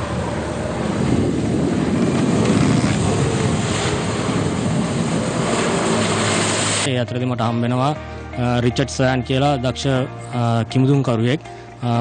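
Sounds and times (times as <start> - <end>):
jet ski engine drone: 0.0 - 6.9
rushing water and spray: 0.0 - 6.9.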